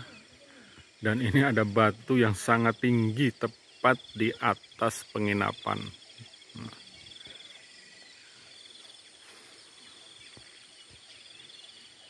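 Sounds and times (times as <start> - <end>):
faint bird calls: 0.0 - 12.0
insects chirping: 0.0 - 12.0.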